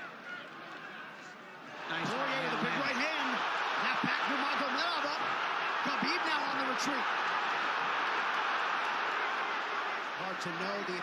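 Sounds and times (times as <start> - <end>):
arena crowd roaring: 0.0 - 11.0.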